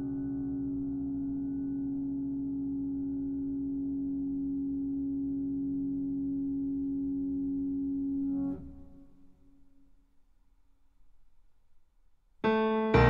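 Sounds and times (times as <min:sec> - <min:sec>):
sustained low piano string drone: 0:00.0 - 0:09.2.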